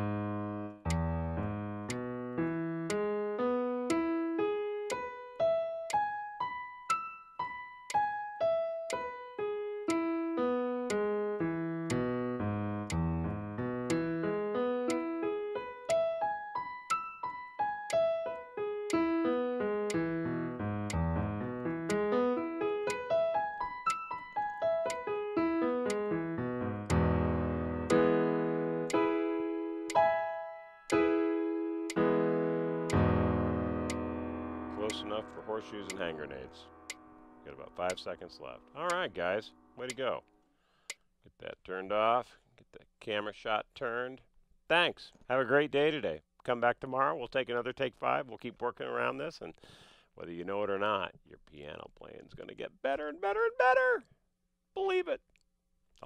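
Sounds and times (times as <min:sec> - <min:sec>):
piano chords ringing: 0:00.0 - 0:40.3
digital piano single notes: 0:00.0 - 0:40.4.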